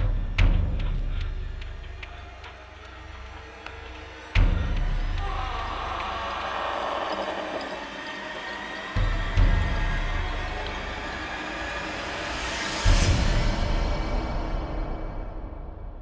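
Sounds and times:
sustained eerie tone: 0:01.1 - 0:14.8.

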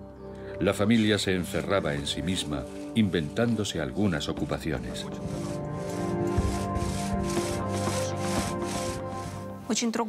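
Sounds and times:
background music: 0:00.0 - 0:10.0
two-man saw cutting log: 0:02.2 - 0:09.5.

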